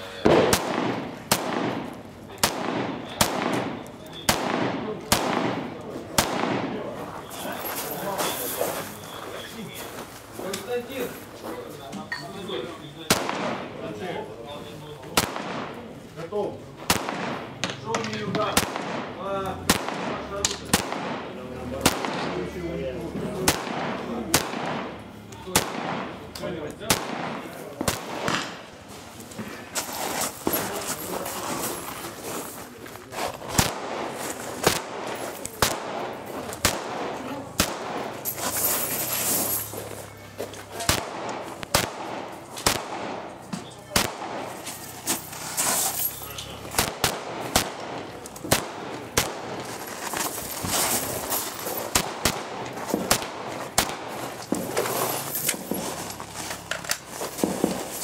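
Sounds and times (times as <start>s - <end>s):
rifle shots: 0.2s - 6.9s, 13.1s - 13.7s, 15.2s - 15.8s, 16.9s - 17.6s, 18.5s - 22.4s, 23.5s - 26.2s, 26.8s - 28.7s, 33.5s - 38.2s, 40.8s - 43.3s, 46.7s - 49.8s, 51.9s - 54.8s.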